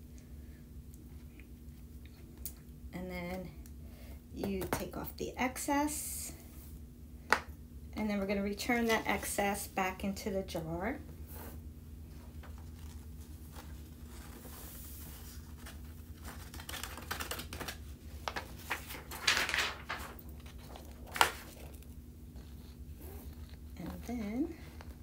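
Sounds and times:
paper rustling and crinkling: 0:12.1 - 0:25.0.

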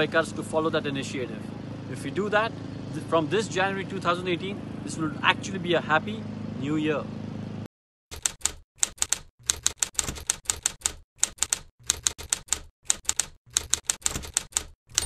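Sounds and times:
typewriter key strikes: 0:08.2 - 0:15.0.

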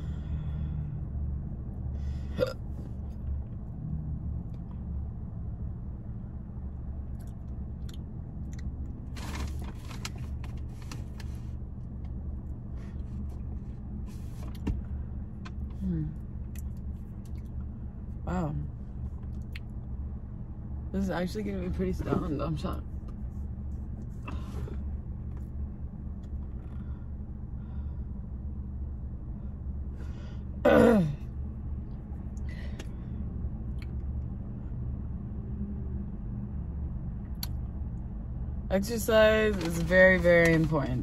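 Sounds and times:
steady low hum: 0:00.0 - 0:41.0
throat or hiccup sounds: 0:02.4 - 0:02.8.

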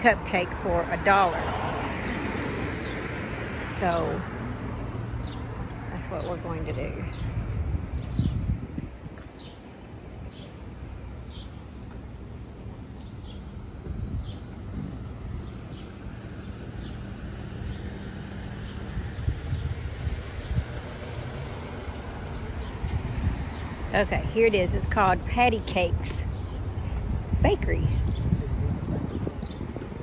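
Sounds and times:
car engine hum: 0:00.0 - 0:30.0.

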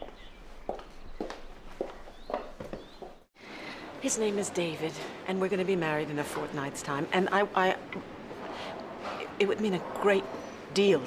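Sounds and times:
footsteps: 0:00.0 - 0:03.3.

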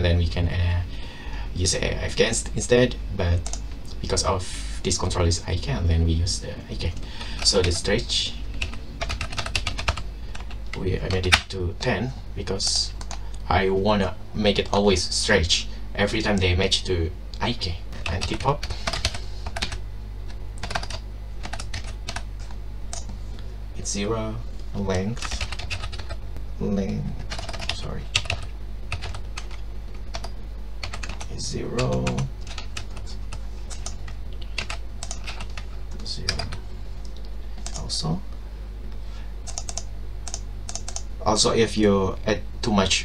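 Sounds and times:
steady low hum: 0:00.0 - 0:43.0
typing on keyboard: 0:08.6 - 0:10.6, 0:18.0 - 0:19.8, 0:20.6 - 0:22.3, 0:25.2 - 0:26.2, 0:27.3 - 0:35.7, 0:39.5 - 0:41.1.

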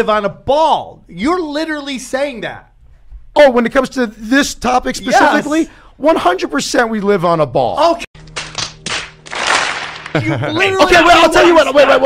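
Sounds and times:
crowd clapping: 0:08.2 - 0:10.5.

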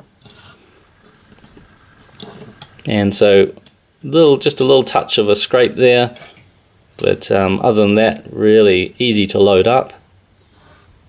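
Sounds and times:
toy cars rubbing and clicking: 0:00.2 - 0:02.9.

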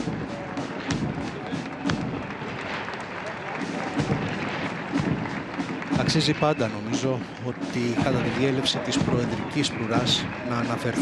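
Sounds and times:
marching steps thudding: 0:00.0 - 0:03.0, 0:03.6 - 0:10.4
crowd applause: 0:00.0 - 0:11.0
military band march music: 0:00.0 - 0:11.0.

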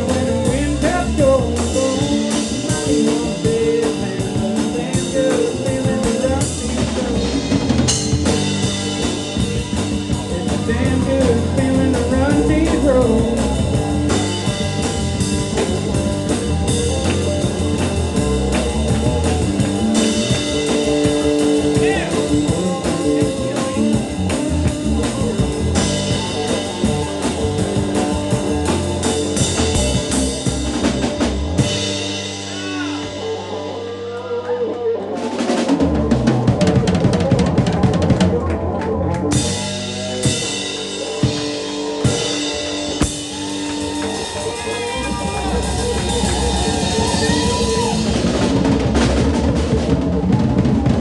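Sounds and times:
rapid drum hits: 0:00.0 - 0:33.4, 0:39.3 - 0:51.0
live band playing: 0:00.0 - 0:51.0.

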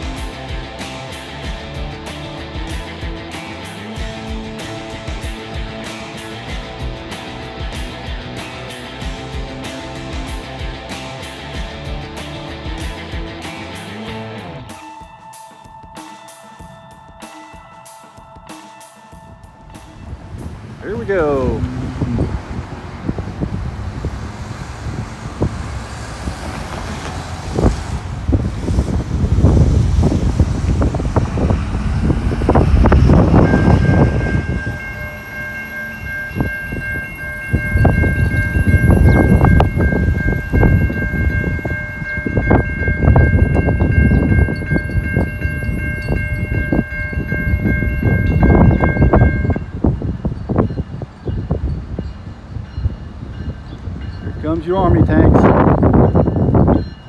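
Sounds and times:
locomotive air horn chord: 0:33.2 - 0:43.4.

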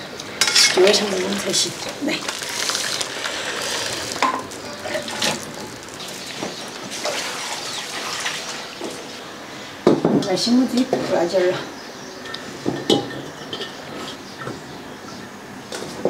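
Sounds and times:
metal utensil clinking on wok: 0:00.4 - 0:01.4
water splashing and dripping: 0:00.8 - 0:09.1.

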